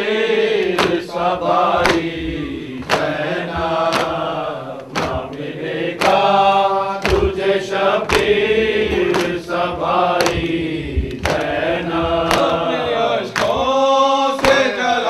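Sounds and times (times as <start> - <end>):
men chanting a lament: 0.0 - 15.0
hands slapping chests: 0.6 - 14.8.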